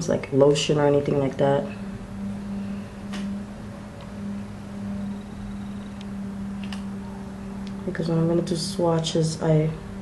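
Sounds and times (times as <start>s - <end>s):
low-pitched hum: 0.0s - 10.0s.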